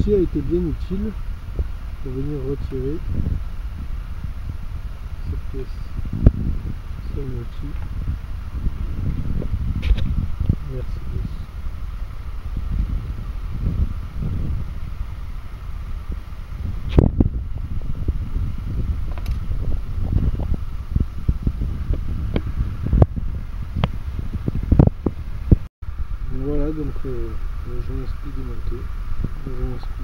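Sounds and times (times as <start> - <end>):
steady low rumbling: 0.0 - 30.0
sharp clicks and knocks: 19.1 - 19.4.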